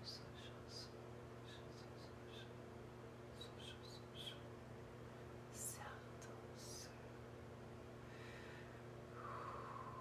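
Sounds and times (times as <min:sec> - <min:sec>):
woman whispering hissing sounds: 0:05.6 - 0:07.0.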